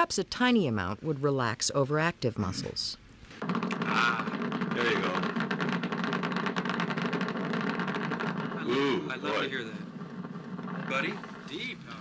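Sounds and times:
dense crackle of rapid clicks: 3.4 - 12.0.

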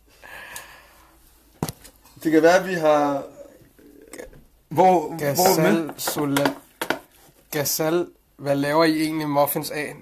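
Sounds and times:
people talking: 2.2 - 6.6, 7.5 - 10.0.

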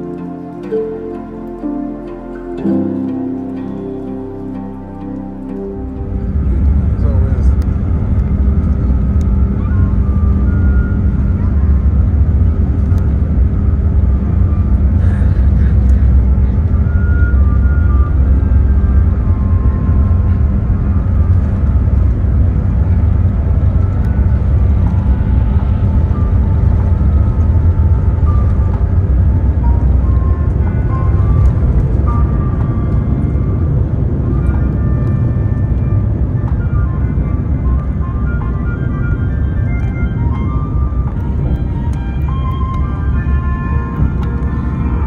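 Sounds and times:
background music: 0.0 - 45.0
jet engines roaring: 0.0 - 45.0
runway rumble: 0.0 - 45.0.

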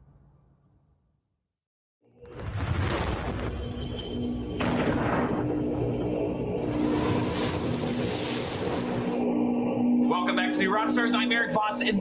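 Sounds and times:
low drone in intro music: 3.2 - 12.0
rushing whoosh: 3.5 - 10.0.

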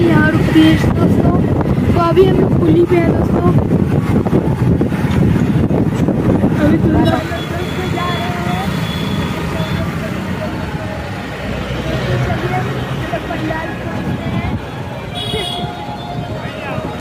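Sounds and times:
riders talking: 0.0 - 17.0
road and traffic noise: 0.0 - 17.0.

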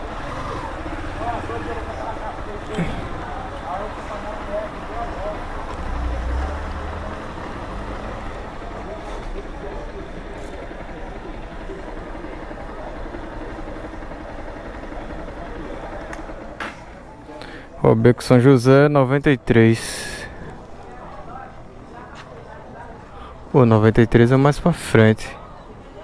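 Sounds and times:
motorcycle engine idling: 0.0 - 6.2, 6.8 - 17.7
faint voices: 0.0 - 26.0
street noise: 0.0 - 26.0.

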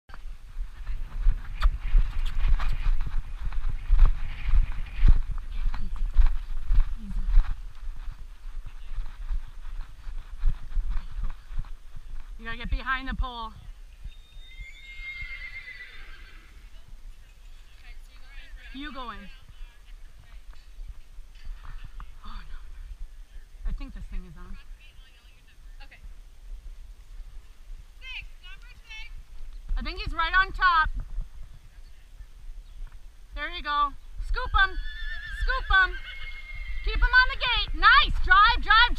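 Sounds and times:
low rumble on microphone: 0.1 - 14.2
wind buffeting microphone: 0.1 - 17.5, 18.4 - 38.9
horse hooves on sand: 0.1 - 38.9.

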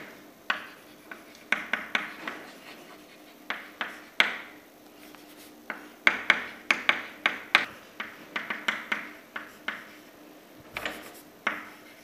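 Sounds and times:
chalk tapping on blackboard: 0.0 - 10.1, 10.8 - 12.0.

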